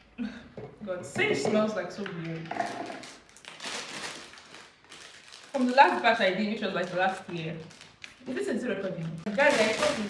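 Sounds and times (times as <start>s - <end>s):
packet crinkling: 2.4s - 10.0s.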